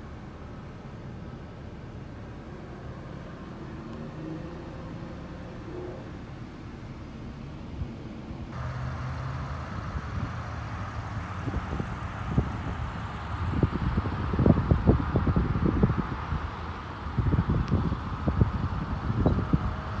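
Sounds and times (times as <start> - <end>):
wind buffeting microphone: 8.6 - 20.0.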